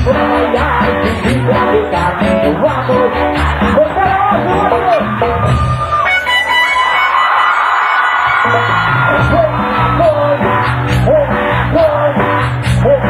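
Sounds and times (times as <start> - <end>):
cumbia band playing: 0.0 - 13.0.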